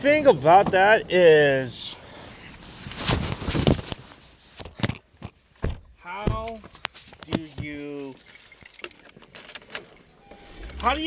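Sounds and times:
car keys jangling: 0:07.8 - 0:11.0.

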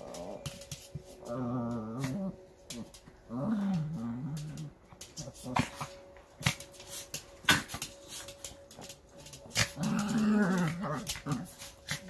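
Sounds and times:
small dogs scuffling: 0:00.0 - 0:12.0.

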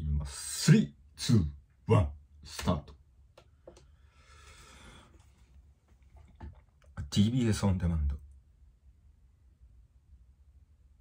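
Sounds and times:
man speaking: 0:00.0 - 0:03.0, 0:07.0 - 0:08.3
faint low room hum: 0:00.0 - 0:11.0.

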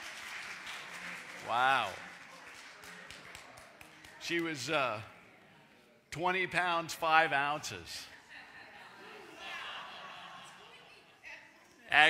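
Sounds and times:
handclaps in a reverberant hall: 0:00.0 - 0:05.0.

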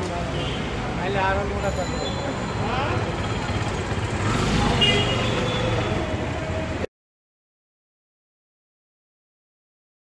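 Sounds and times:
traffic engines rumbling: 0:00.0 - 0:06.9.

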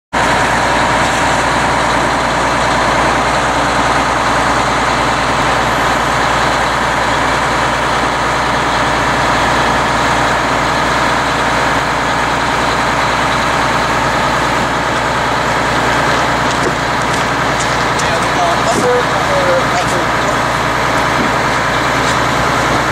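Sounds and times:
diesel engine running: 0:00.1 - 0:22.9.

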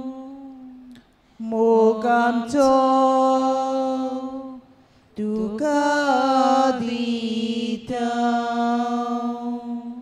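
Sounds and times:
person singing slow chant: 0:00.0 - 0:10.0.

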